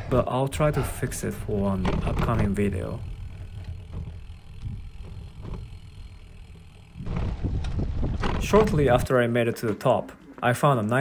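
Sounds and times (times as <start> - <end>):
wind buffeting microphone: 1.3 - 9.1.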